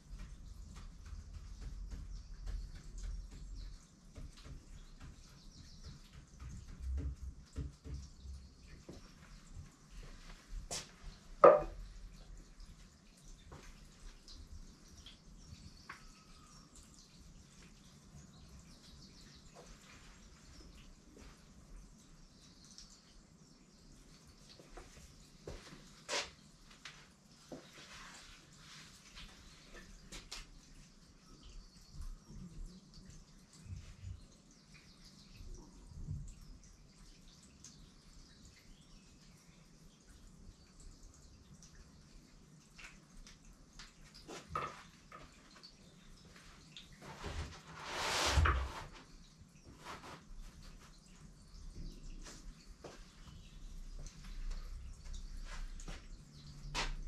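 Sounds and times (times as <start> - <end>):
knock on table: 11.4 - 11.8.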